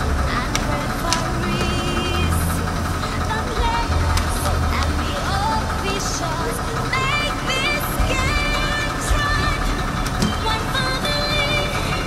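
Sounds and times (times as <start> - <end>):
bus engine idling: 0.0 - 12.0
music with voiced melody: 0.0 - 12.0.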